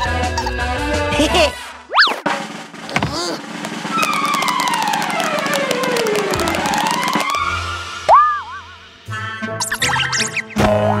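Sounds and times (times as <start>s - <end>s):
background music: 2.7s - 11.0s
rapid clicking: 3.4s - 7.4s.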